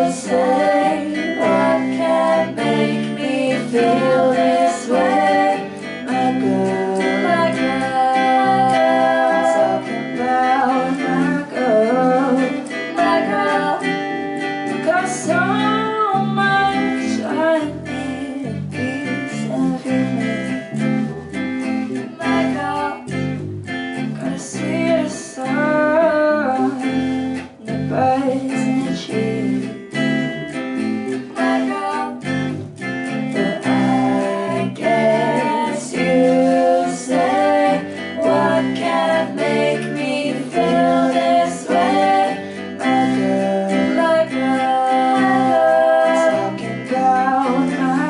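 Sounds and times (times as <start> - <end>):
woman singing: 0.0 - 21.2, 21.8 - 23.4, 24.0 - 48.0
guitar strummed: 0.0 - 48.0.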